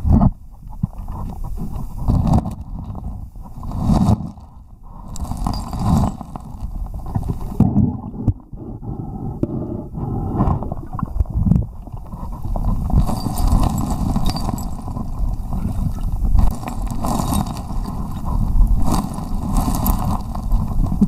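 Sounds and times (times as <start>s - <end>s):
stones clicking and knocking: 5.1s - 7.6s, 12.0s - 21.0s.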